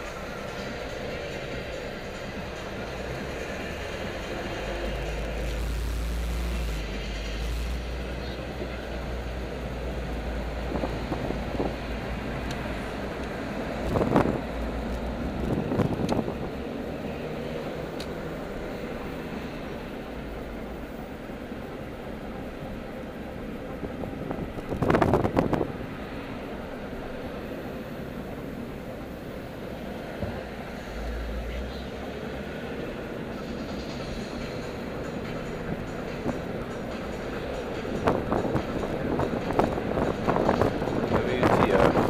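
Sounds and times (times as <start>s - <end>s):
car road and engine noise: 0.0s - 42.0s.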